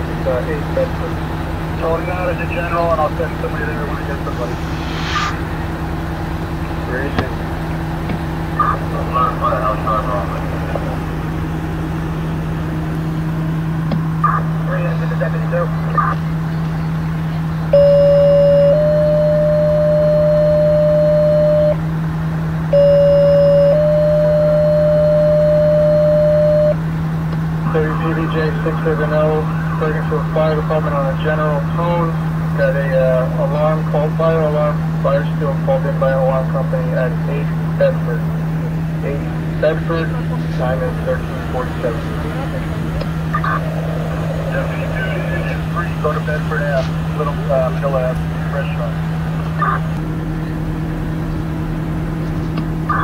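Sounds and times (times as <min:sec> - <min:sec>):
dispatcher talking over radio: 0:00.0 - 0:05.6, 0:06.4 - 0:12.6, 0:14.2 - 0:21.8, 0:22.8 - 0:26.8, 0:27.4 - 0:50.0
diesel engine idling: 0:00.0 - 0:53.0
steady low hum: 0:00.0 - 0:53.0
brief hiss: 0:04.2 - 0:05.7
two-tone pager alert: 0:17.7 - 0:21.8, 0:22.7 - 0:26.8.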